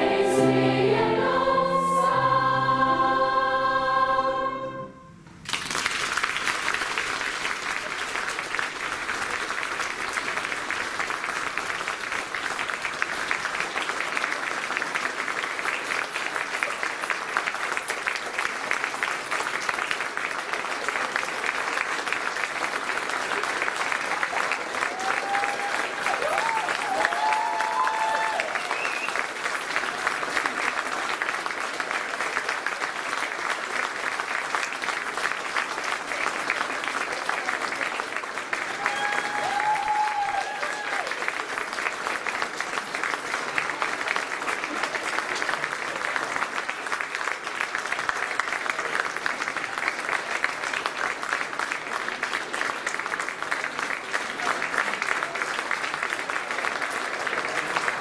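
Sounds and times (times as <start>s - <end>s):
audience applauding: 5.4s - 58.0s.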